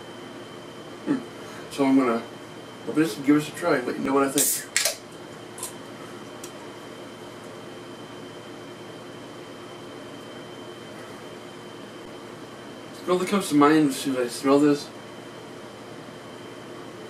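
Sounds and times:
low room hum and hiss: 0:00.0 - 0:17.0.

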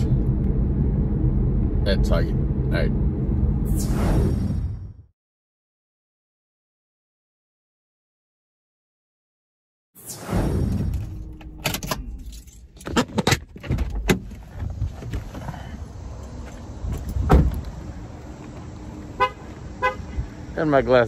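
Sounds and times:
car horn chirps: 0:19.2 - 0:20.3.

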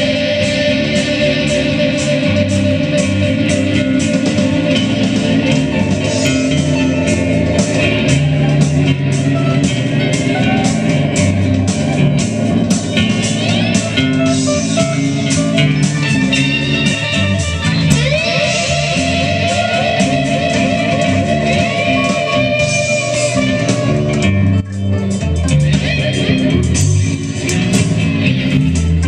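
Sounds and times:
bass guitar: 0:00.0 - 0:29.0
drum kit: 0:00.0 - 0:29.0
electric guitar playing: 0:00.0 - 0:29.0.

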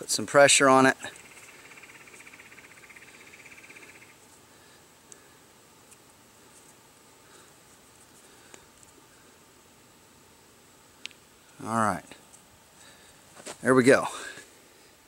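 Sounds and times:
faint clicks and rustles: 0:04.0 - 0:09.4, 0:11.0 - 0:13.7.

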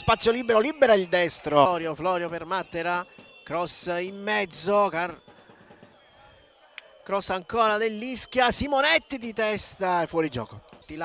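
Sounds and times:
man's voice: 0:00.0 - 0:05.2.

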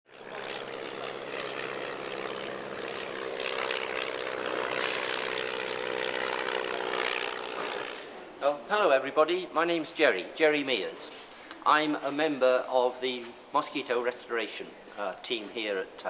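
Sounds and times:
mechanical drone with low hum: 0:00.1 - 0:10.4.

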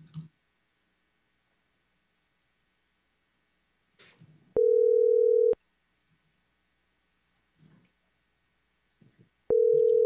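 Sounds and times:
telephone tone: 0:04.6 - 0:05.6, 0:09.5 - 0:10.0.

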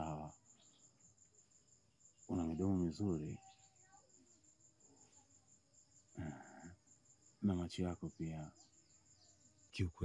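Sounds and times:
insect chirping: 0:00.0 - 0:10.0
person murmuring: 0:06.2 - 0:06.7.

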